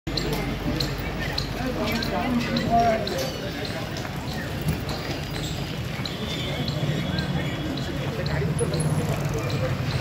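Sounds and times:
people talking on street: 0.1 - 10.0.

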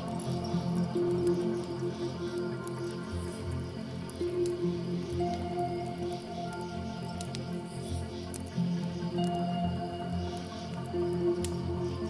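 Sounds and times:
soft slow piano music: 0.0 - 12.0
wood fire crackling: 0.0 - 12.0.

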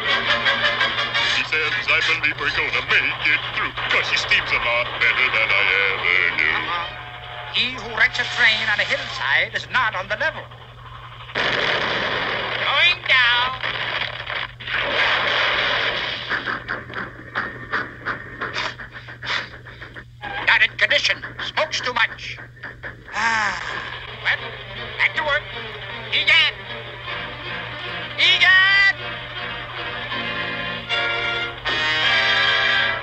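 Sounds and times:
hissing noise: 1.3 - 24.6.

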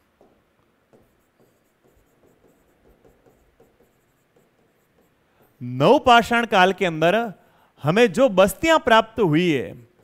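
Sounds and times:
marker pen writing on whiteboard: 0.0 - 5.7.

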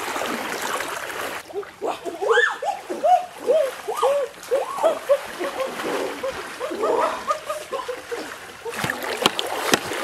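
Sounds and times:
river water running: 0.0 - 10.0
water splashing: 0.0 - 10.0.

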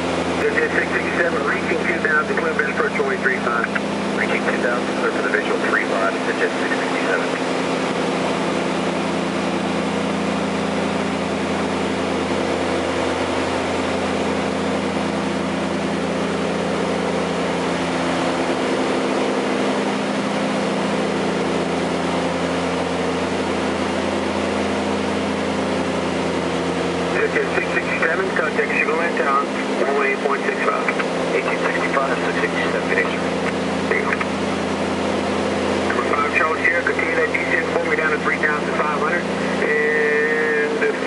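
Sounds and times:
aircraft piston engines droning: 0.0 - 41.0.

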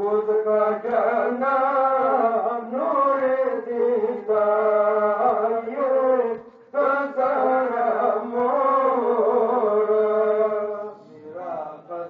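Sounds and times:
person chanting a lament: 0.0 - 12.0.

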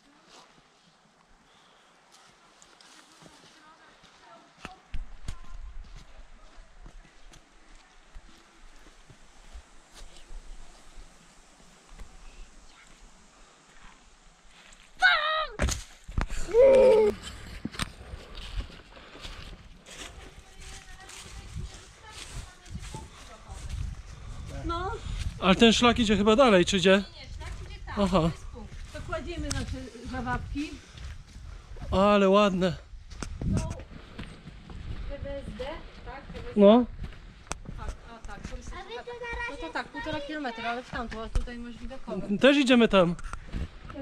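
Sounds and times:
person calling out loudly: 16.4 - 17.2
footsteps on rock: 33.0 - 42.1.

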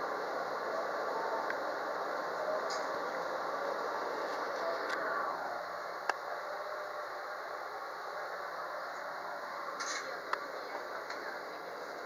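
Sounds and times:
train equipment hum and hiss: 0.0 - 12.0.

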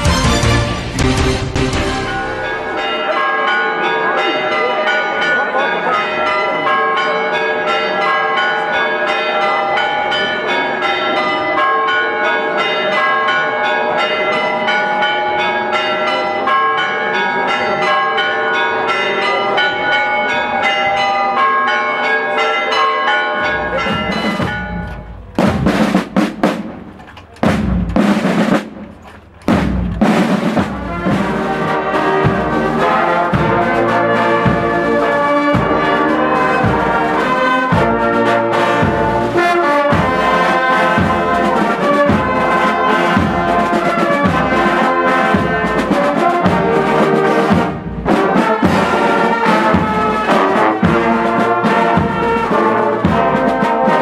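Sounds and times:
marching drum strikes: 0.0 - 2.8, 23.4 - 54.0
church bells pealing: 0.0 - 54.0.

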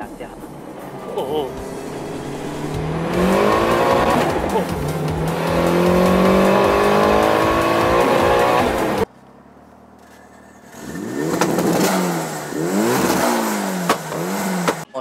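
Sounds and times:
engine revving: 0.0 - 9.1, 10.5 - 14.9
car engine accelerating: 0.0 - 15.0.

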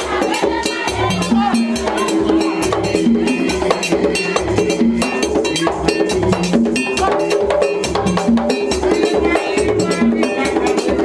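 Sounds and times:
hand drums fast rhythm: 0.0 - 11.0.

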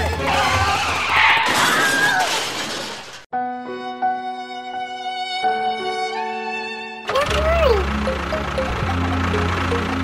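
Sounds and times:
crash and shatter: 0.7 - 3.3.

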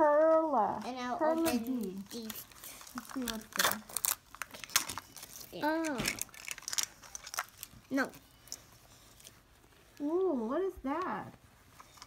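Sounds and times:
foil wrapper crinkling: 1.2 - 10.4, 11.4 - 12.0.

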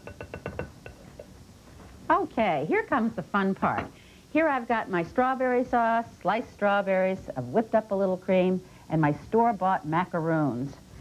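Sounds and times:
utensil tapping glass bowl: 0.0 - 1.3.

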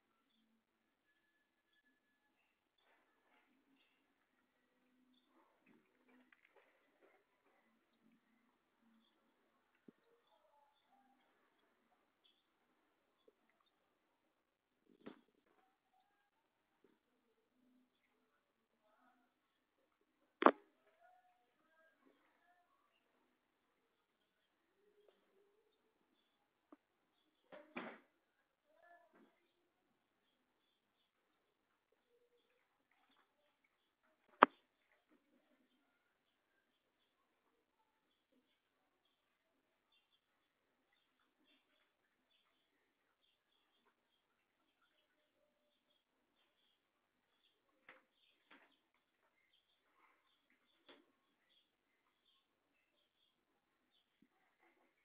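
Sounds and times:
faint high chirps: 0.0 - 27.6.

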